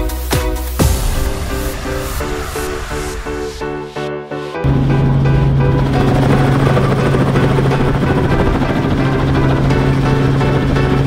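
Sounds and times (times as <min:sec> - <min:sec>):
background music: 0:00.0 - 0:11.0
helicopter engine and rotor drone: 0:04.6 - 0:11.0.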